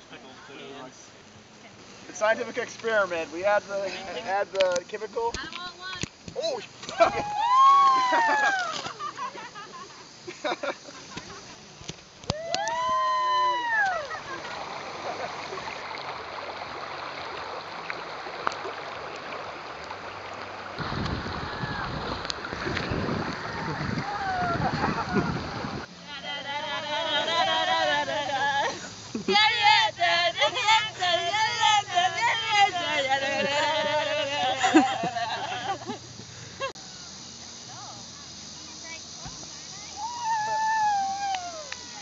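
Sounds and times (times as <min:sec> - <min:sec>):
river water rippling and splashing: 0:00.0 - 0:42.0
loud howl: 0:07.0 - 0:08.8, 0:12.3 - 0:14.2, 0:23.4 - 0:25.4, 0:26.1 - 0:28.8, 0:40.0 - 0:42.0
wind buffeting microphone: 0:20.8 - 0:25.9.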